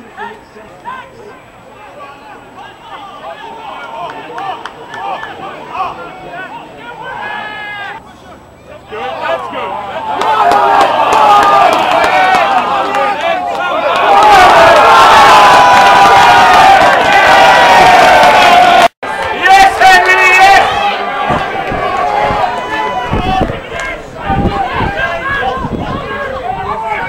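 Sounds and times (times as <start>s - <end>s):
crowd cheering: 0.0s - 27.0s
scattered shouts: 0.8s - 27.0s.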